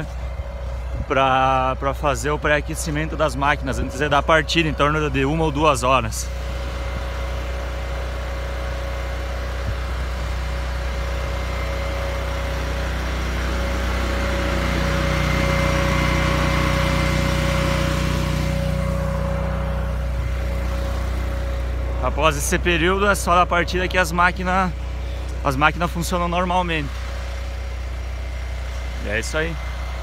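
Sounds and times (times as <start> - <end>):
welder generator engine running: 0.0 - 30.0.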